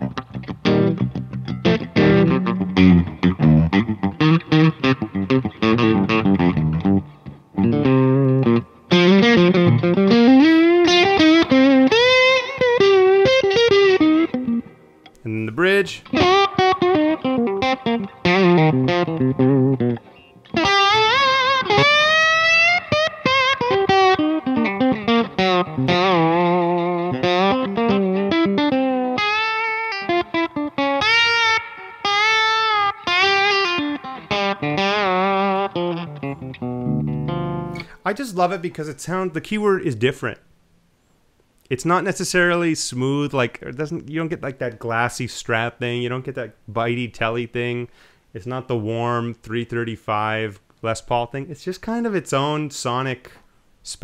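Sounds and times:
slide electric guitar: 0:00.0 - 0:15.2, 0:15.9 - 0:38.0.

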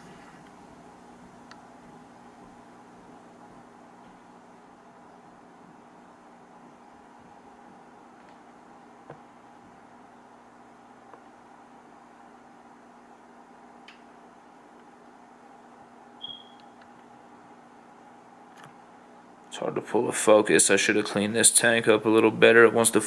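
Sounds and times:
aquarium equipment humming: 0:00.0 - 0:23.0.

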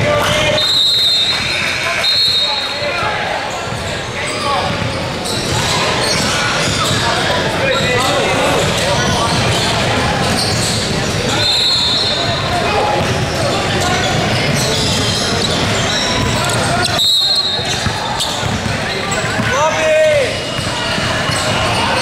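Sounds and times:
voices calling out in echoing hall: 0:00.0 - 0:22.0
referee's whistle: 0:00.3 - 0:03.0, 0:11.3 - 0:12.4, 0:14.8 - 0:18.4
basketballs bouncing on hardwood: 0:04.7 - 0:06.2, 0:17.6 - 0:19.6.

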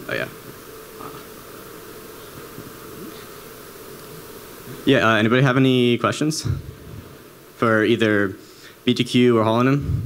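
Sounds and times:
low room hum: 0:00.0 - 0:10.0
man speaking into microphone: 0:04.8 - 0:06.6, 0:07.6 - 0:10.0.

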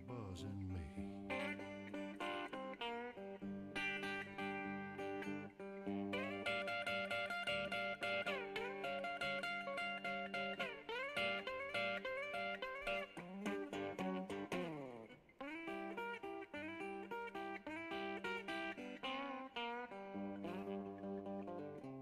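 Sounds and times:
plucked guitar with bends and slides: 0:00.0 - 0:22.0.

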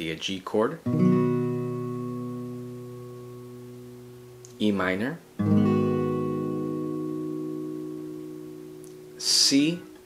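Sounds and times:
acoustic guitar chord strummed: 0:00.8 - 0:10.0.

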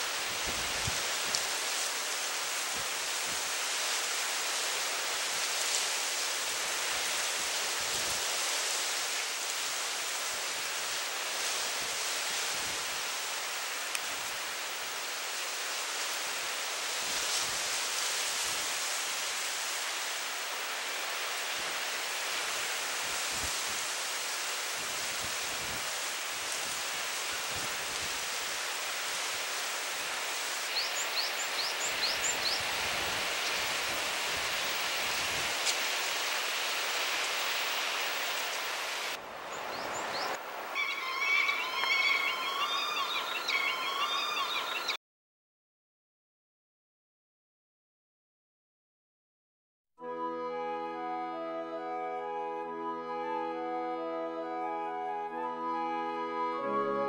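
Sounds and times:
bird giving high short calls: 0:40.8 - 0:45.0.

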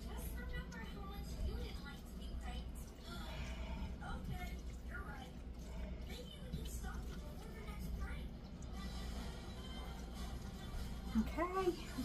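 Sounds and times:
television voices and music: 0:00.0 - 0:12.0.

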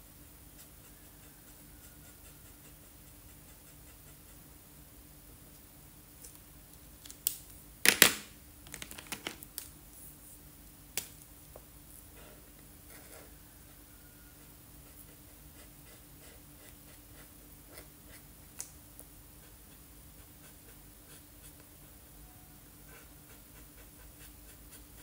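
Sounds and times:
pens clattering: 0:07.9 - 0:09.4.

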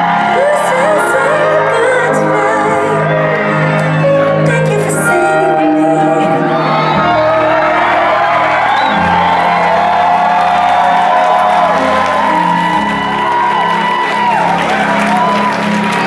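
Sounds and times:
audience whooping and cheering: 0:00.0 - 0:02.1, 0:06.3 - 0:16.0.

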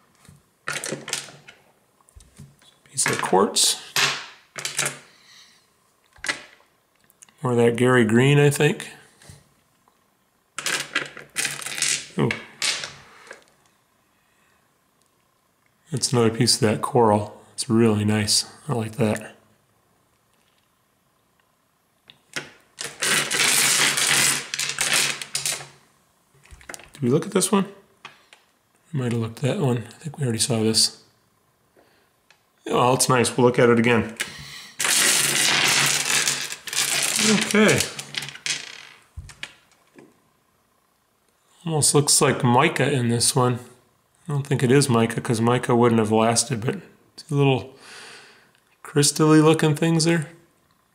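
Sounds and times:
stones clattering on wooden table: 0:10.6 - 0:13.0, 0:34.9 - 0:39.6.

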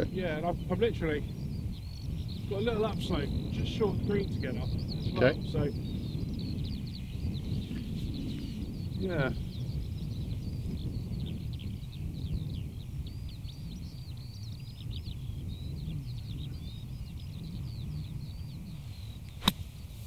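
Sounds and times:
bird singing: 0:00.0 - 0:19.8
wind rumbling on microphone: 0:00.0 - 0:20.0
golf club striking sand: 0:19.4 - 0:20.0.

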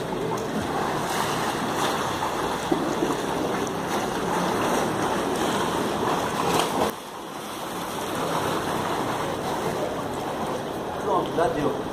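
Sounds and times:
pool water splashing: 0:00.0 - 0:11.9.

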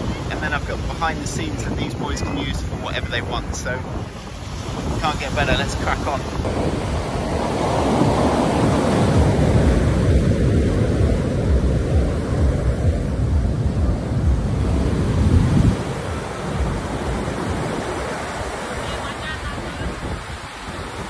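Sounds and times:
ocean surf breaking on beach: 0:00.0 - 0:21.0
wind rumbling on microphone: 0:00.0 - 0:21.0.

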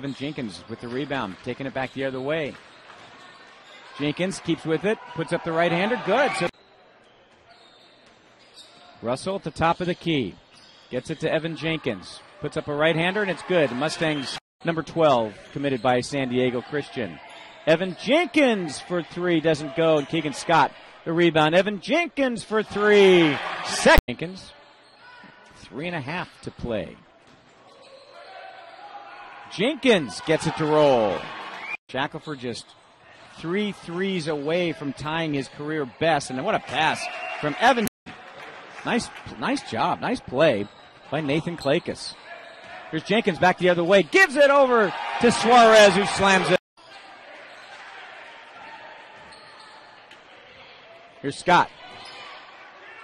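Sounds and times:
basketball game crowd and court noise: 0:00.0 - 0:53.0.

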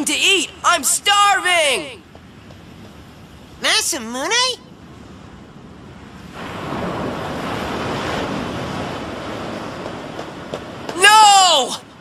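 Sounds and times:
ocean waves surging: 0:00.0 - 0:12.0.

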